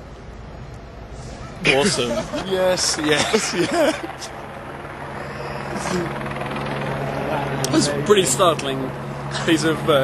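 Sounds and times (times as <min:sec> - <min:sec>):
city street noise: 0:00.0 - 0:10.0.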